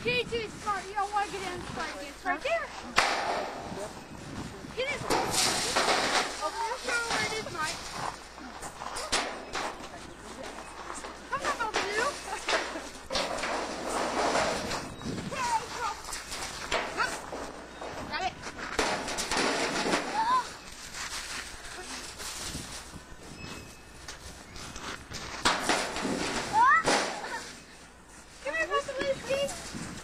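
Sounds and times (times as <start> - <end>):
children and adults talking: 0.0 - 24.8, 25.8 - 30.0.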